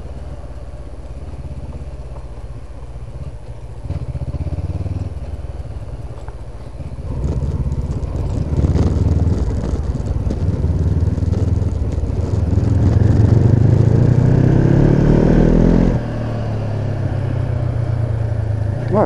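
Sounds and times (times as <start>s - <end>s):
motorcycle engine revving: 0.0s - 19.0s.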